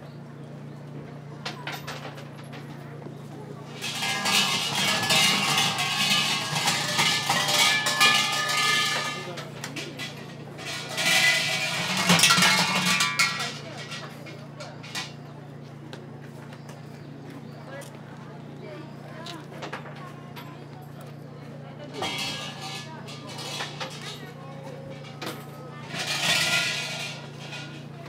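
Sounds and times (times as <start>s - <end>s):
metal bells jangling: 3.8s - 14.1s.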